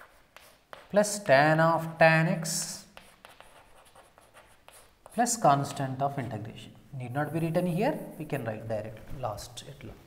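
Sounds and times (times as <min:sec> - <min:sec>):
chalk tapping and scratching: 0:00.0 - 0:01.2, 0:02.6 - 0:05.9.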